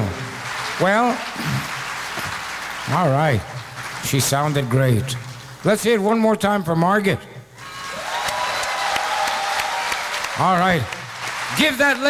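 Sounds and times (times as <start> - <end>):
audience applauding: 0.0 - 5.7, 7.6 - 12.0.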